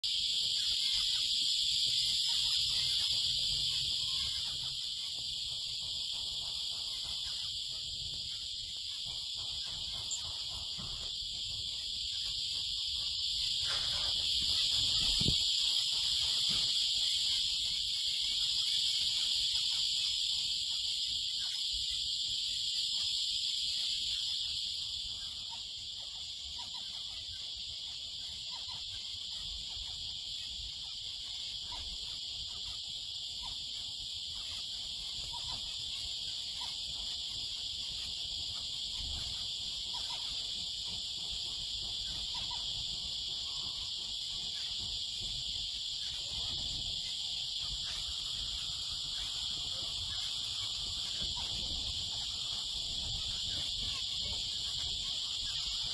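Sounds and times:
cricket chorus: 0.0 - 55.9.

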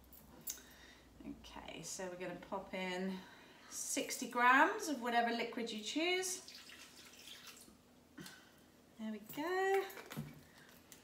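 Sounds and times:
juice trickling into metal bowl: 6.4 - 7.8.

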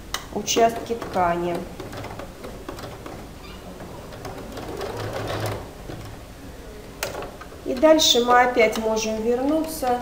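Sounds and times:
sewing machine stitching: 0.4 - 6.3.

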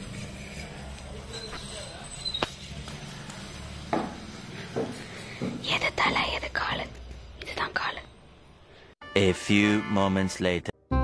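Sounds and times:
person whispering: 5.6 - 8.1.

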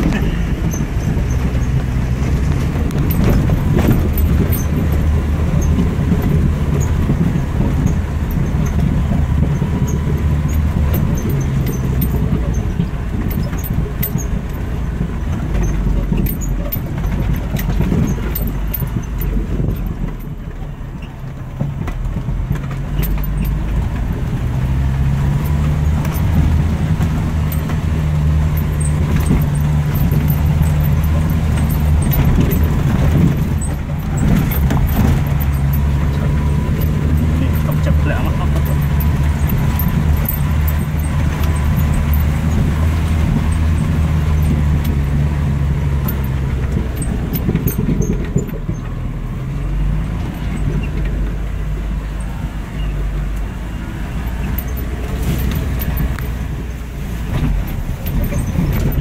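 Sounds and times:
body rattles and clicks: 0.0 - 59.0
car engine driving: 0.0 - 59.0.

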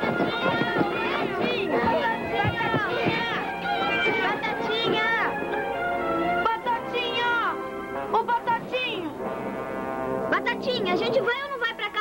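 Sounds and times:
voices: 0.0 - 9.2
low brass-like film music note: 9.1 - 10.9.

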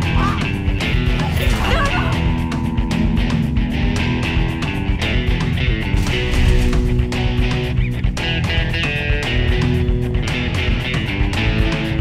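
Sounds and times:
rock music with guitar: 0.0 - 12.0.

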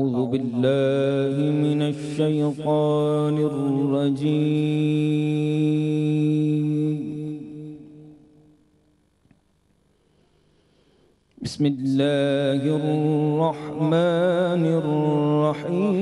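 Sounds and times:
man reciting melodically: 0.0 - 8.2, 11.4 - 16.0.

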